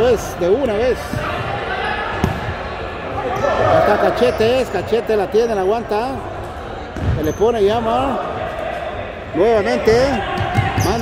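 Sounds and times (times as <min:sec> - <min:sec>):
players' voices: 0:00.0 - 0:11.0.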